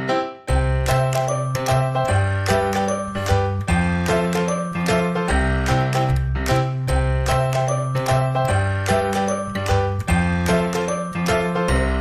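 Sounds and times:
light tinkly background music: 0.5 - 6.0, 6.9 - 12.0.

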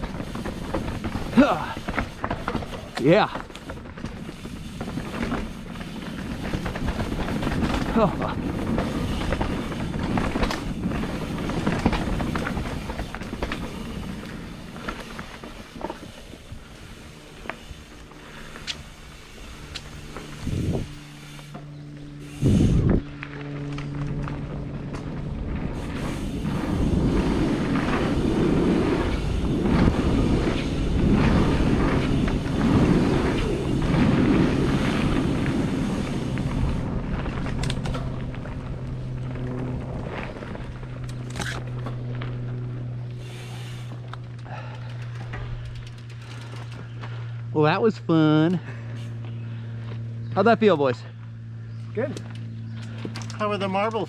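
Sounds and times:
bike rattling: 0.0 - 54.0
bike tyres rolling over dirt: 0.0 - 54.0
steady low hum: 0.0 - 54.0
wind on microphone: 20.4 - 21.0, 22.3 - 23.2.

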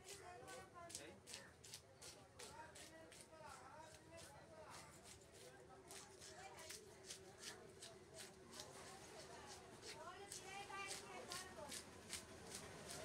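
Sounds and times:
faint voices talking: 0.0 - 13.0.

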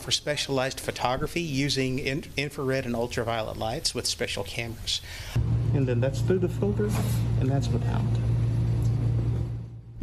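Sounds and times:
low mechanical hum: 5.3 - 10.0.

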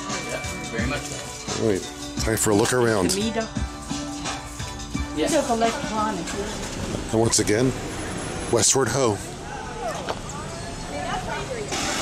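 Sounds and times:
traffic noise: 0.0 - 12.0
steady hum of vehicle noise: 3.8 - 12.0
faint voices of passers-by: 5.1 - 12.0.

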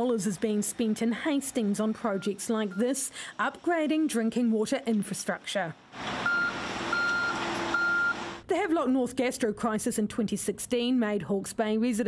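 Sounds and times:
excavator engine running: 0.0 - 8.5
high warning beeps: 2.1 - 3.0, 6.2 - 8.2.

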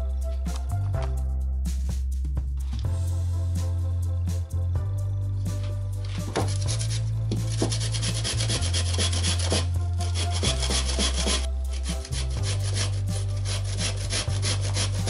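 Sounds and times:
potato rasping on metal grater: 6.4 - 15.0.

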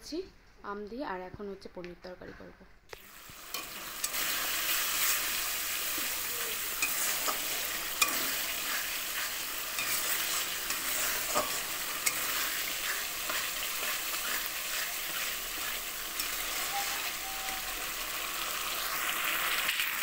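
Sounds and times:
curry sizzling in oil: 3.0 - 20.0
spatula scraping pan: 3.5 - 18.7.

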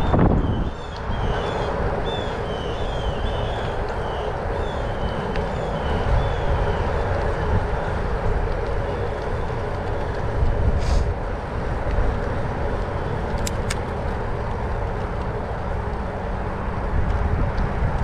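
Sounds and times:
bicycle tyre noise: 0.0 - 18.0
rumbling wind on microphone: 0.0 - 18.0.

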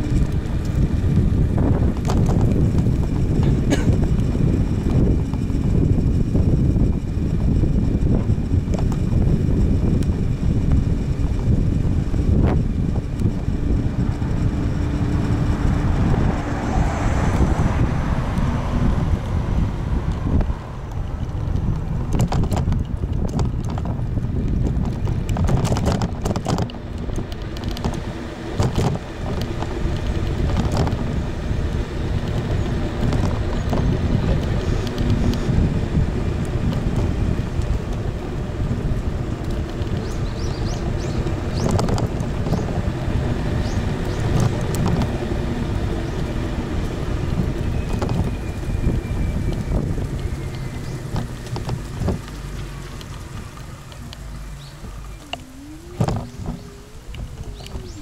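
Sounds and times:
tyres rumbling on asphalt: 0.0 - 58.0
wind buffeting microphone: 0.0 - 58.0.

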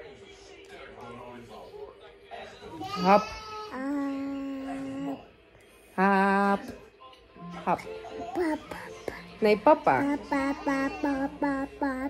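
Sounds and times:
toddler chanting sing-song: 10.0 - 12.0.

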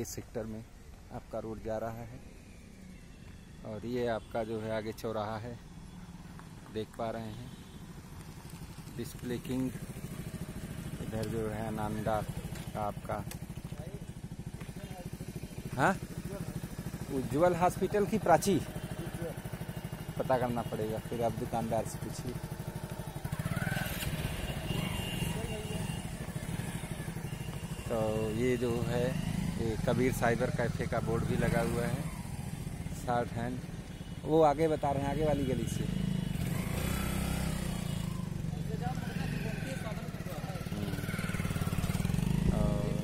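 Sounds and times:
motorcycle engine idling: 0.5 - 43.0
people talking: 11.0 - 14.0, 17.1 - 19.3, 20.2 - 22.4, 25.3 - 26.0, 27.9 - 32.0, 33.0 - 33.6, 34.3 - 35.9, 38.5 - 41.0, 42.5 - 43.0.

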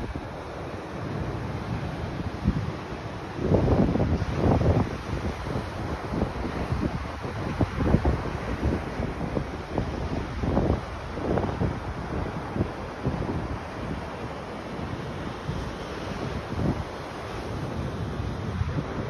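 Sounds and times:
ocean surf breaking: 0.0 - 19.0
wind buffeting microphone: 0.0 - 19.0.

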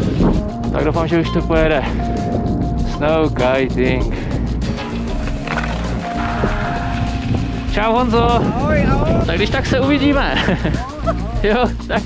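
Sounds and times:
wind buffeting microphone: 0.0 - 11.6
background music steady notes: 0.0 - 12.0.

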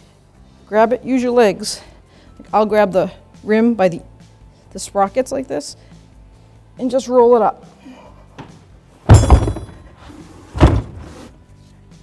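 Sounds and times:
heavy tire thud: 9.1 - 10.0, 10.6 - 11.1.

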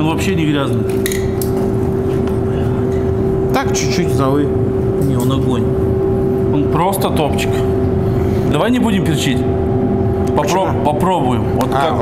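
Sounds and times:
machine hum: 0.0 - 12.0.

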